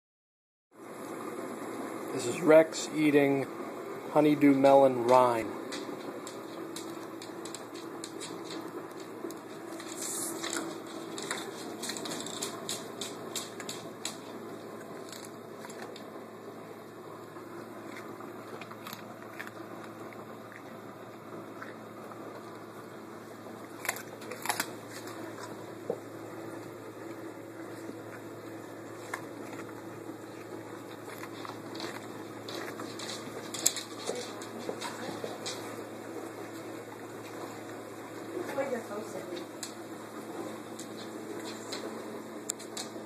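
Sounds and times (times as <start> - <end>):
dog chewing melon rind: 4.2 - 43.0.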